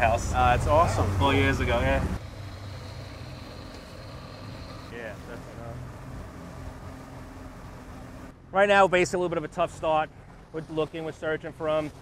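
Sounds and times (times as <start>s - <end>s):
boat motor rumbling: 0.0s - 12.0s
wind: 0.0s - 12.0s.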